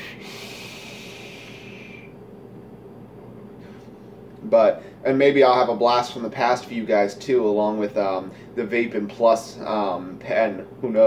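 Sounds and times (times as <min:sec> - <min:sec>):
air hissing through vape: 0:00.0 - 0:02.2.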